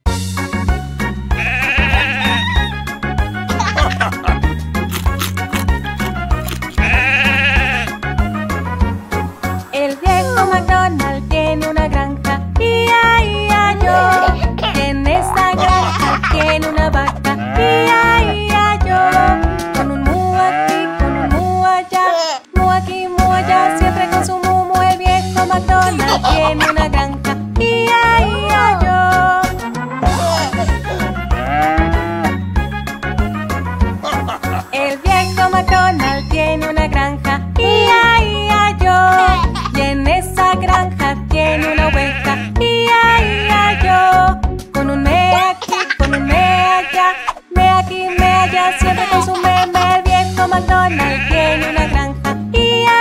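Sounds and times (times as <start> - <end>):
bouncy children's music: 0.1 - 53.0
cartoon sheep bleating: 1.4 - 2.7, 6.7 - 7.9, 13.8 - 14.5, 17.4 - 21.4, 23.2 - 24.4, 30.0 - 32.3, 41.4 - 44.1, 46.1 - 47.4, 48.0 - 50.0, 50.8 - 52.0.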